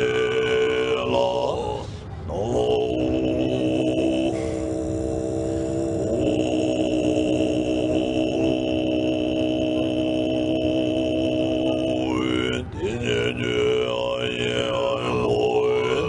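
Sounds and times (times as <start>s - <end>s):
throat singing low held note: 0.0s - 16.0s.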